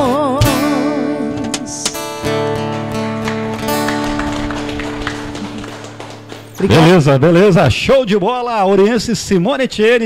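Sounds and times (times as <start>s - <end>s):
acoustic guitar chord ringing: 0.0s - 7.2s.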